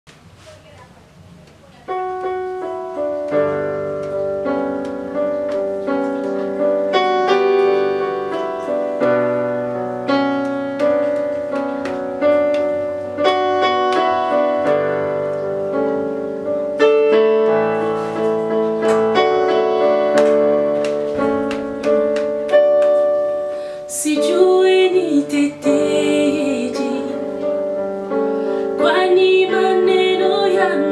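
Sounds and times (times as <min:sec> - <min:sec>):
keyboard playing piano-like chords: 0:01.8 - 0:30.9.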